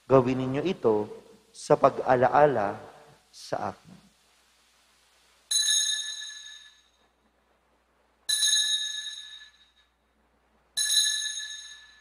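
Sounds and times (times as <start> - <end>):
altar bell ringing: 5.5 - 7.1, 8.3 - 10.0, 10.8 - 12.0.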